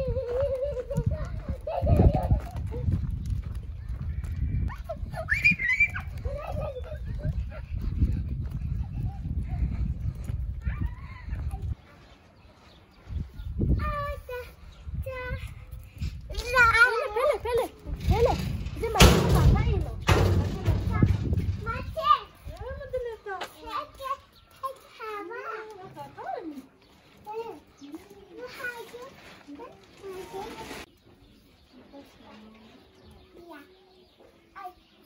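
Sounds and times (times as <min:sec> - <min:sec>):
low rumbling on microphone: 0:00.0 - 0:11.8, 0:17.8 - 0:23.0
small child talking: 0:13.7 - 0:15.7, 0:16.3 - 0:26.6, 0:27.2 - 0:30.8, 0:33.2 - 0:35.0.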